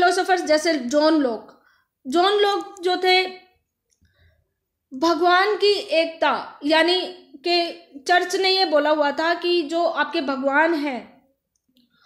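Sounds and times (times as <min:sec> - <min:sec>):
woman speaking: 0:00.0 - 0:03.6, 0:04.9 - 0:11.3.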